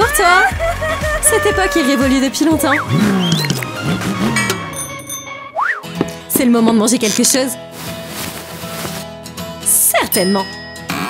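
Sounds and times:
background music: 0.0s - 11.0s
high twinkling chime: 4.4s - 5.6s.

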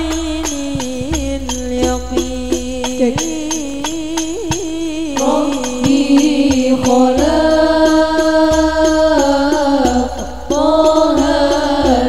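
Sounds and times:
chant-like devotional singing: 0.0s - 12.0s
light ticking percussion: 0.0s - 12.0s.

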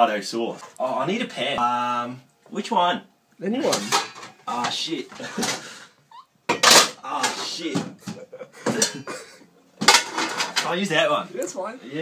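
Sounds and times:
pots and pans clattering: 3.6s - 5.8s, 6.5s - 9.2s, 9.8s - 10.8s.

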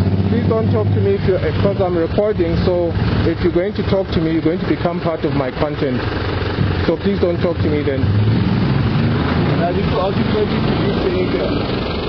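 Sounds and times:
car engine rumbling: 0.0s - 12.0s.

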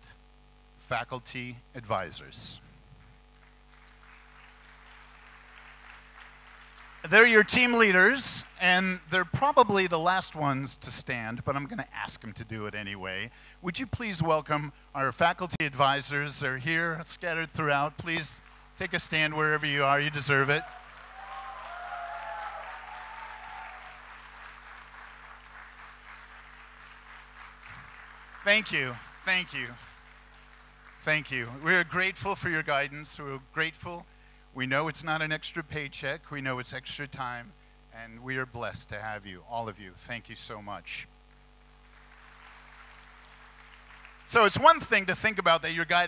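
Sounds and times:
electrical hum: 0.0s - 46.0s
audience applauding: 3.4s - 8.2s, 18.4s - 31.6s, 41.8s - 44.3s.

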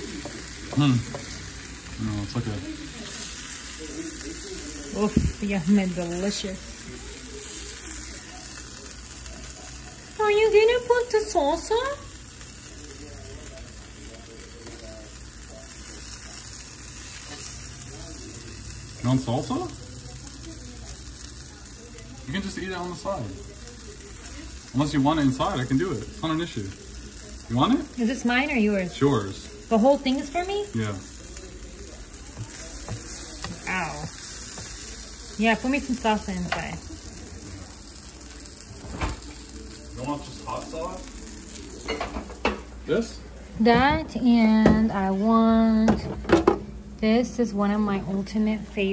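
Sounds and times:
food sizzling on a griddle: 0.0s - 48.9s.

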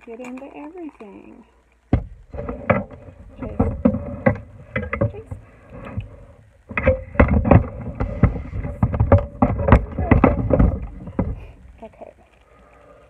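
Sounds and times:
clunking knocks on wooden table: 1.9s - 5.4s, 6.7s - 11.6s.

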